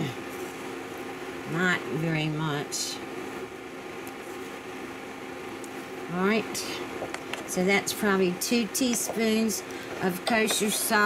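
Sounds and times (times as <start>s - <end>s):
fan-like hiss: 0.0s - 11.0s
induction cooktop hum: 0.0s - 11.0s.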